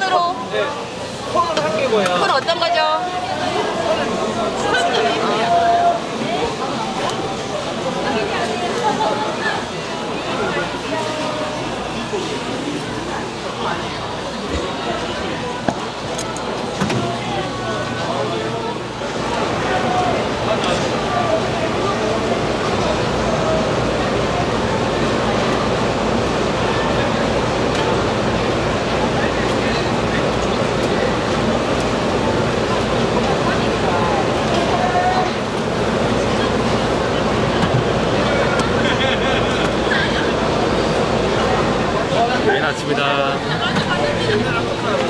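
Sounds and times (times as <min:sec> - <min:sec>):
indistinct voices: 0:00.0 - 0:45.0
low rumble of market: 0:00.0 - 0:45.0
people talking in a crowd: 0:00.0 - 0:45.0.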